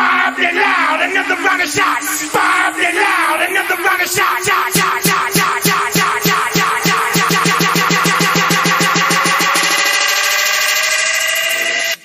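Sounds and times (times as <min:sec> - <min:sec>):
rising synth tone: 0:00.0 - 0:12.0
electronic drum roll: 0:01.2 - 0:12.0.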